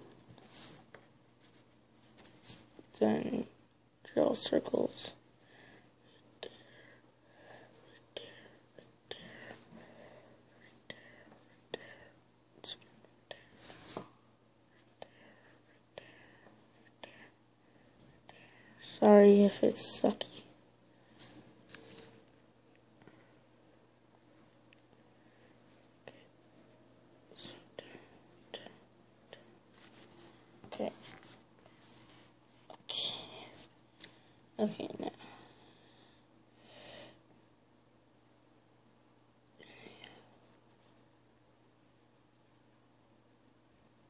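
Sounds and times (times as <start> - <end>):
low steady hum: 0.0 - 44.0
pencil scratching on paper: 0.4 - 2.8, 28.3 - 32.7.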